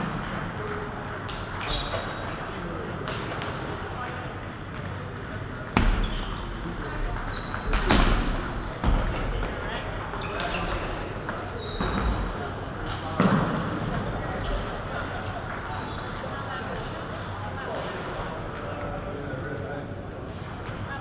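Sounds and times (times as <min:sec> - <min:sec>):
shoes squeaking on floor: 0:01.6 - 0:02.4, 0:05.9 - 0:09.2, 0:10.0 - 0:15.1.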